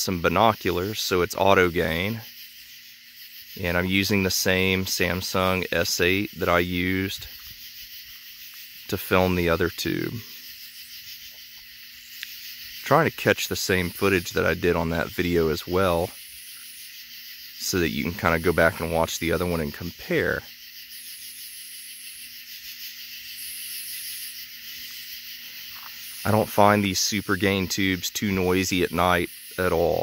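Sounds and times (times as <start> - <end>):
man talking: 0.0 - 2.3, 3.6 - 7.3, 8.9 - 10.3, 12.8 - 16.1, 17.6 - 20.4, 26.2 - 30.0
night insects trilling: 0.0 - 30.0
steady high hiss: 0.0 - 30.0.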